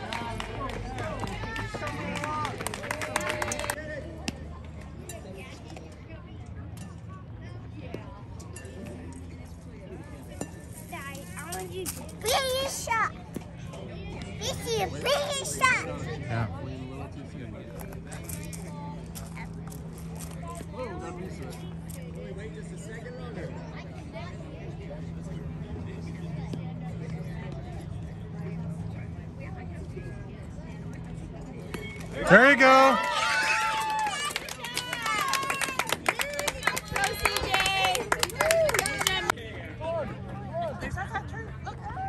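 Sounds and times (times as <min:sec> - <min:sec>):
spectators cheering: 0:00.0 - 0:03.8, 0:31.8 - 0:39.3
faint chatter of voices: 0:00.0 - 0:42.0
hand clapping: 0:00.1 - 0:03.8, 0:33.7 - 0:39.3.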